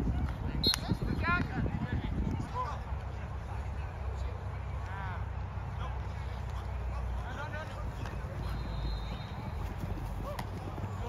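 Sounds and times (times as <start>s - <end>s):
distant voices: 0.3s - 11.0s
low outdoor rumble: 1.3s - 11.0s.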